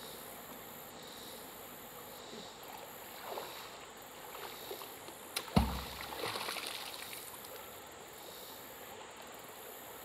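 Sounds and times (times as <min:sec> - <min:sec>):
water sloshing: 0:02.7 - 0:07.7.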